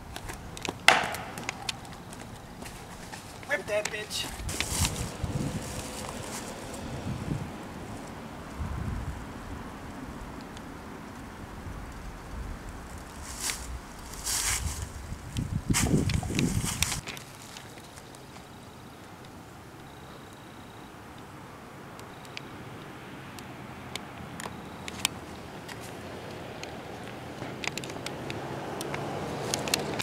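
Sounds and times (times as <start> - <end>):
footsteps crunching dry leaves: 0.9 - 6.9, 13.1 - 15.0, 15.7 - 18.1
wind rumbling on microphone: 4.3 - 17.0.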